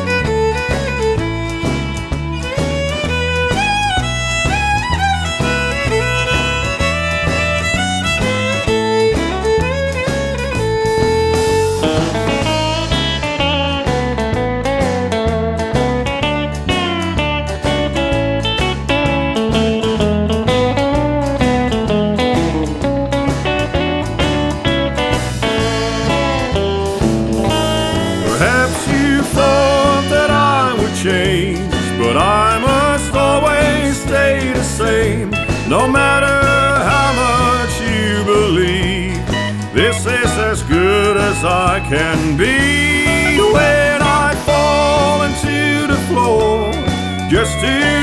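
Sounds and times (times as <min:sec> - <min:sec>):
bass: 0:00.0 - 0:48.0
lead guitar melody: 0:00.0 - 0:48.0
steady beat: 0:00.1 - 0:20.2, 0:21.1 - 0:40.0.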